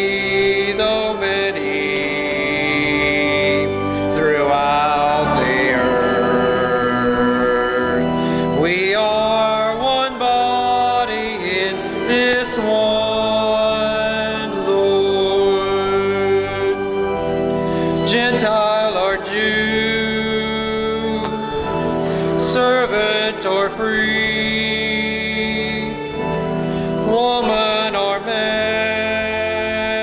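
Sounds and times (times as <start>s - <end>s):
instrumental accompaniment: 0.0s - 30.0s
person singing a hymn: 0.0s - 30.0s.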